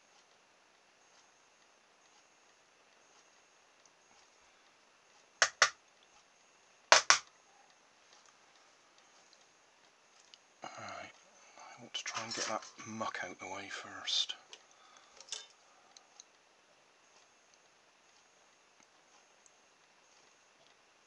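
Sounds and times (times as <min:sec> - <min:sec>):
sharp double clicks: 0:05.4 - 0:05.8, 0:06.9 - 0:07.3.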